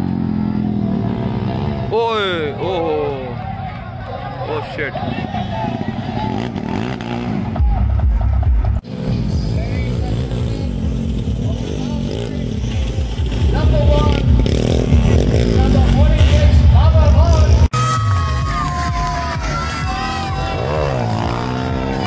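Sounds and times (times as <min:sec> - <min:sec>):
dirt bike engines revving: 0:00.0 - 0:22.0
people shouting: 0:02.2 - 0:08.3, 0:17.6 - 0:22.0.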